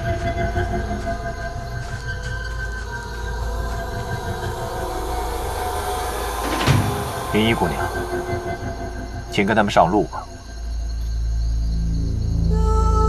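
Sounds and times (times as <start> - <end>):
suspenseful drone music: 0.0 - 13.0
low rumble: 3.1 - 13.0.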